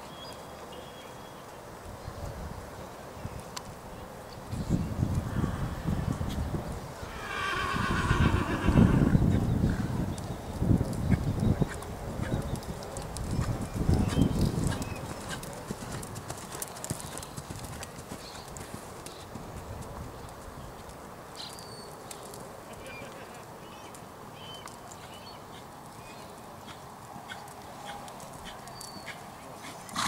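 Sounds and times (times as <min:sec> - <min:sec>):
horse whinnying: 0:07.1 - 0:09.2
horse hoofbeats on sand: 0:08.4 - 0:20.4.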